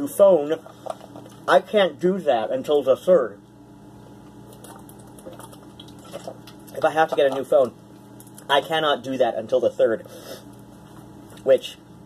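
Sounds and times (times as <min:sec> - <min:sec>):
person gulping from plastic bottle: 0:04.5 - 0:06.7.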